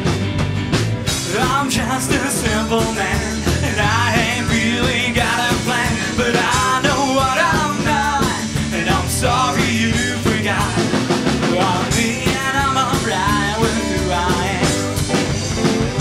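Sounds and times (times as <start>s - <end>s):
bass guitar: 0.0s - 16.0s
drum kit: 0.0s - 16.0s
electric and acoustic guitars: 0.0s - 16.0s
lead vocal singing: 1.1s - 15.4s.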